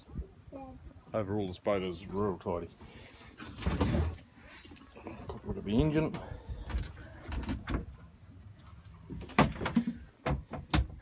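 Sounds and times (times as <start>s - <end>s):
hatch knocks and thumps: 9.1s - 11.0s.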